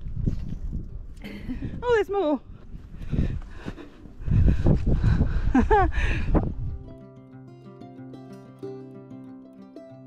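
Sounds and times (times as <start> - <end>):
wind buffeting microphone: 0.0 - 6.9
person laughing: 5.3 - 6.3
guitar music: 6.4 - 10.0.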